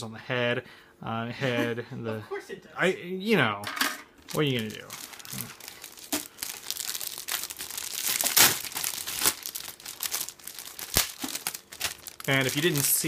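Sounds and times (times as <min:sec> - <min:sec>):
plastic bags crinkling: 0:04.3 - 0:13.0.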